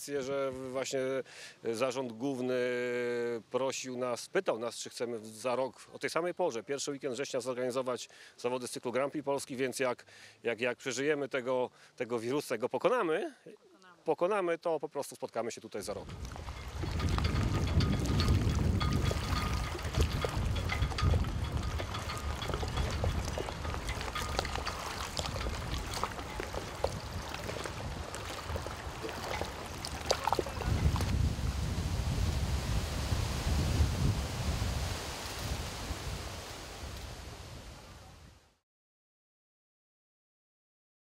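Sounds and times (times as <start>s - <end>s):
lake water lapping: 15.9s - 33.6s
wind on microphone: 16.0s - 38.4s.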